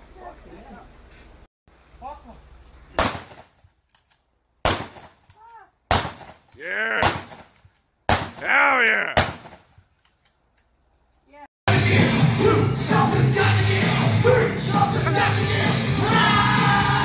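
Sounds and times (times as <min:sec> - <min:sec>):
handgun shots: 0:04.6 - 0:08.4, 0:09.2 - 0:09.7.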